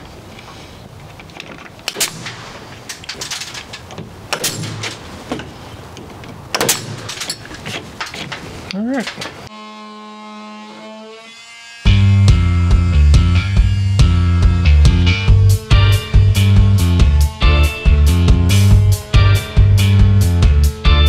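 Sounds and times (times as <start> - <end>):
pneumatic nail gun firing: 1.9 - 3.6, 4.3 - 5.1, 6.6 - 7.4
rock music with heavy beat: 11.9 - 21.0.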